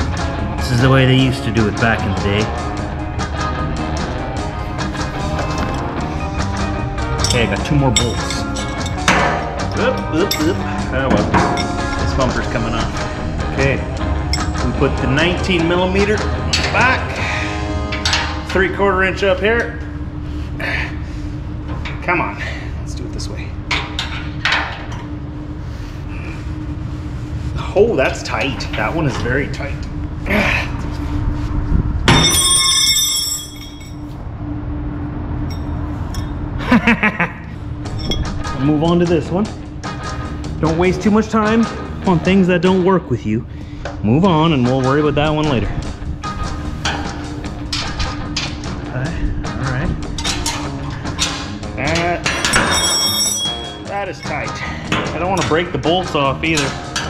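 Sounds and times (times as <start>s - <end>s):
low rumble: 0.0s - 51.8s
background music with steady beat: 0.0s - 57.0s
constant hum: 0.0s - 57.0s.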